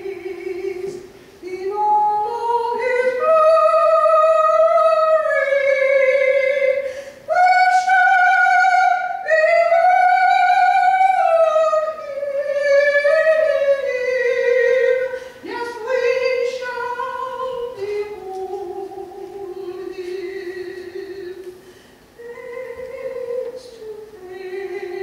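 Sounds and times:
woman singing gospel solo: 0.0 - 25.0.

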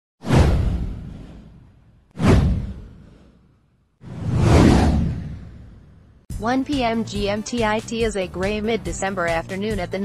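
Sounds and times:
whoosh sound effect: 0.2 - 6.1.

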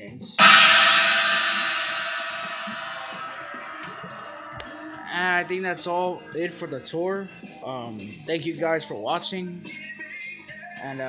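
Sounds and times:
china cymbal ringing: 0.4 - 5.7.

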